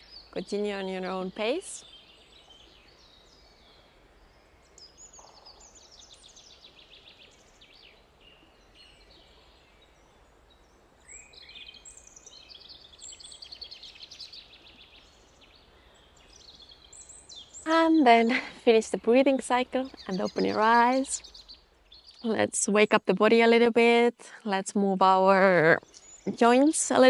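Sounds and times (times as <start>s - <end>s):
songbirds chirping: 0.0s - 27.0s.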